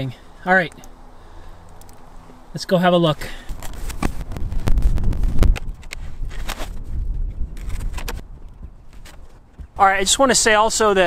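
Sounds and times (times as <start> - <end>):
wind rumbling on microphone: 3.5 - 11.0.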